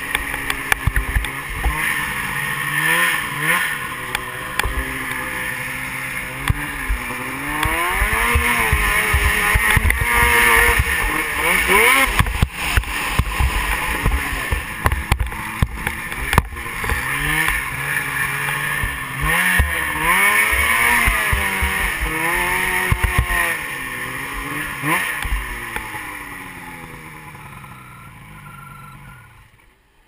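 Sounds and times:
snowmobile engine revving: 0:00.0 - 0:29.6
sled thumping over snow: 0:06.4 - 0:17.7.

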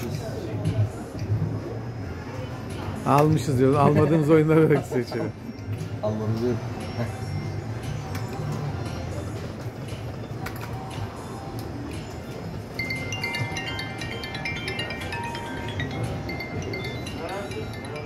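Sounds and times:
casino background: 0:03.1 - 0:18.0
slot machine electronic game sounds: 0:12.6 - 0:18.0
bright chiming tones: 0:12.7 - 0:18.0.

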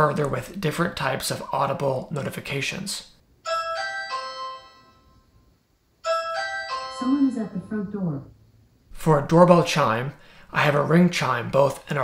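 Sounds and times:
electronic doorbell chime: 0:03.4 - 0:05.4, 0:06.0 - 0:07.7.

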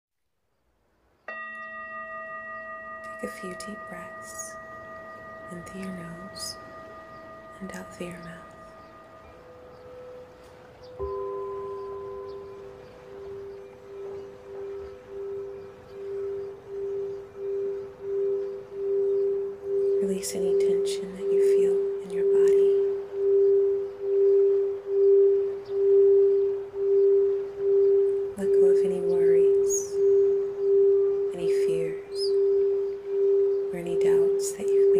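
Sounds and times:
singing bowl struck and ringing: 0:01.2 - 0:34.9.

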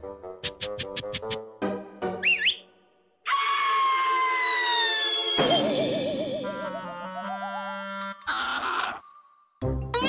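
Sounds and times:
cartoon music: 0:05.4 - 0:09.0.

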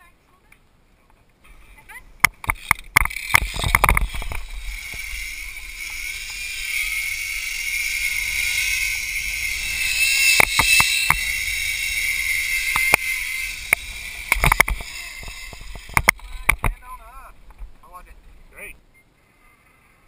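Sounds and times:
zipline pulleys whining on cable: 0:01.8 - 0:17.4
sharp clicks: 0:02.2 - 0:16.8
rushing noise: 0:02.4 - 0:18.8.

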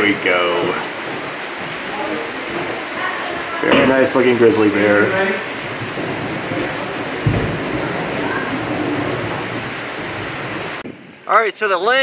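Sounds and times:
rushing outdoor noise: 0:00.0 - 0:12.0
low thump: 0:05.5 - 0:11.2.

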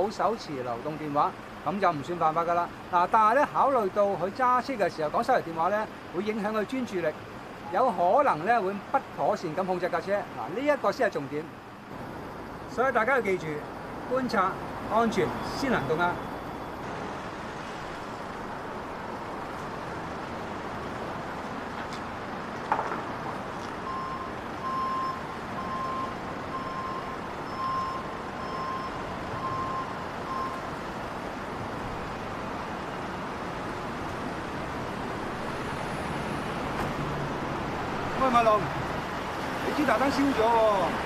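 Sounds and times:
street traffic noise: 0:00.0 - 0:41.0
reversing alarm beeps: 0:23.8 - 0:30.6.

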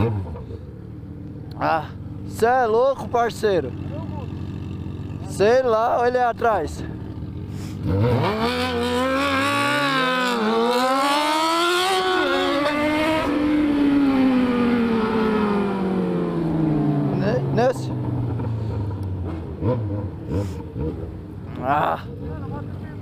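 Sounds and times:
motorcycle engine accelerating: 0:00.0 - 0:23.0
second motorcycle engine: 0:00.0 - 0:23.0.

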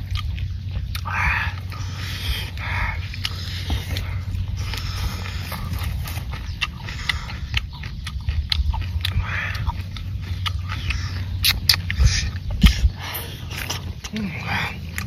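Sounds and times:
wet chewing and lip-smacking: 0:00.0 - 0:15.0.

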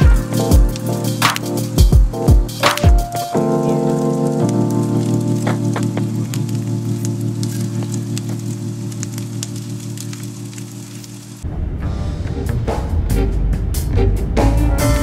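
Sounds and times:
light crackle: 0:00.0 - 0:11.5.

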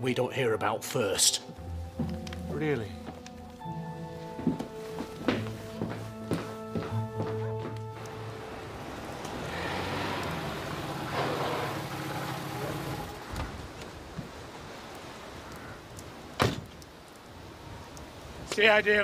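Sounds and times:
car engine running: 0:08.3 - 0:13.1.

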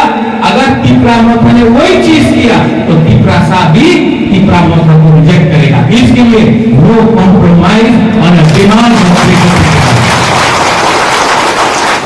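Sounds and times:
crowd applauding: 0:08.5 - 0:12.0.

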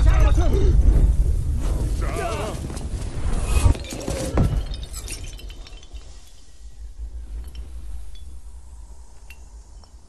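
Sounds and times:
glassy shattering and tinkling: 0:03.6 - 0:08.5.

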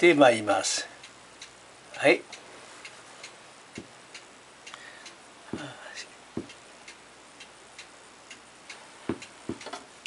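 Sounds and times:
toy mechanism ticking: 0:01.0 - 0:10.0.

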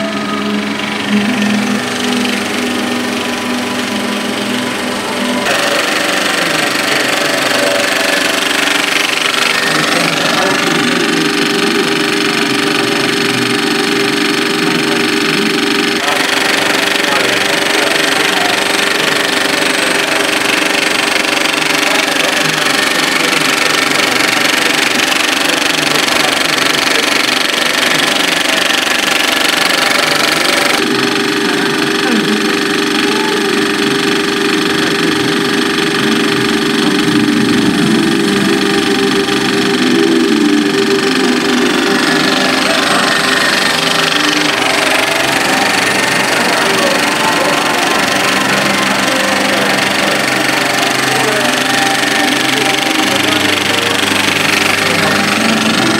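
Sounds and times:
film projector clattering: 0:00.0 - 0:55.9.

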